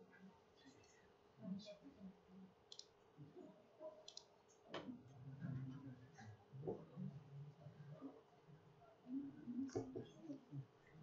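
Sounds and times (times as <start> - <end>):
faint computer mouse clicks: 2.7 - 2.9, 4.0 - 4.3.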